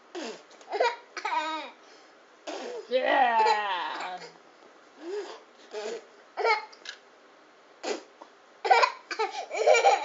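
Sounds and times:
toddler laughing: 0:08.7 - 0:10.0.

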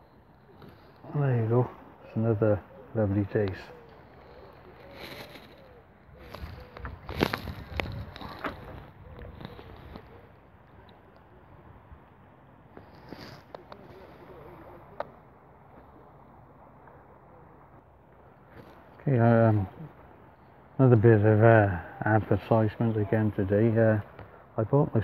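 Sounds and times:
faint steady background noise: 0:00.0 - 0:25.0
knocks and rustles of handling: 0:04.8 - 0:10.2.

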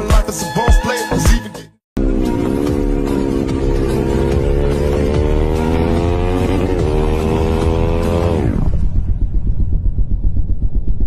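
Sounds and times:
motorcycle engine revving: 0:02.0 - 0:11.0.

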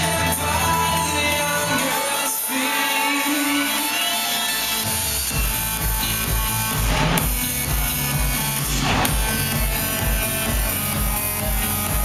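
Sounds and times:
electronic house music: 0:00.0 - 0:12.0
steady kick drum: 0:05.3 - 0:12.0.

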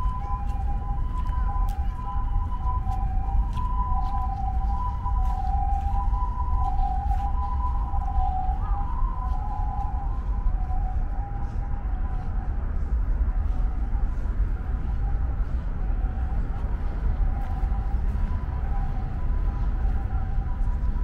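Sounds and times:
two-tone ambulance siren: 0:00.0 - 0:21.0.

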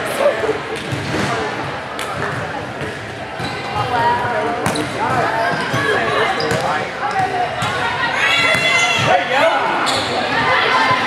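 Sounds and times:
people calling out and chattering: 0:00.0 - 0:11.0.

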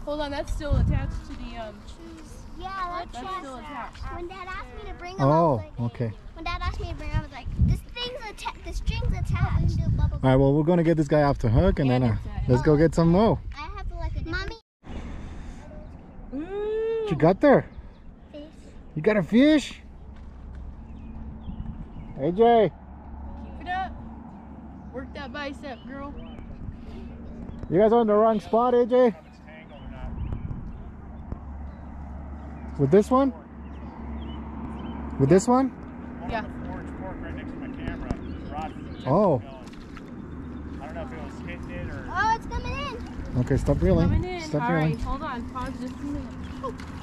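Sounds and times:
steady low rumble: 0:17.7 - 0:28.3, 0:29.2 - 0:47.0.

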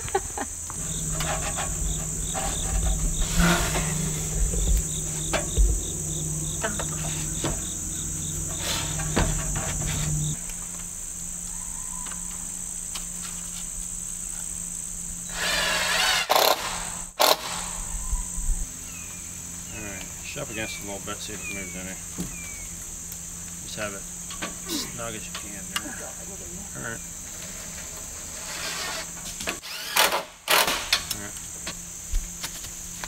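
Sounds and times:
insect quick chirps: 0:00.0 - 0:25.8
insects droning: 0:00.0 - 0:33.0
thumps and rustles: 0:00.8 - 0:10.4.

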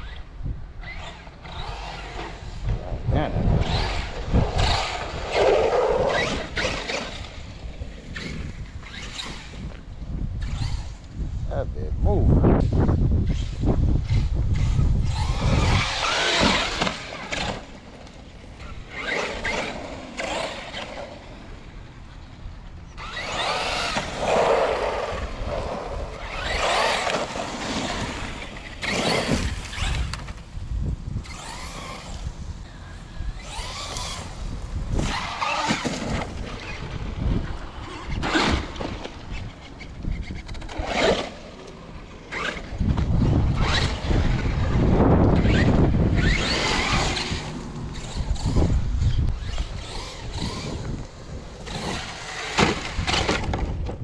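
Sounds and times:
rc truck motor whine: 0:00.0 - 0:11.2, 0:12.5 - 0:54.0
wind on microphone: 0:00.0 - 0:17.8, 0:22.5 - 0:54.0.

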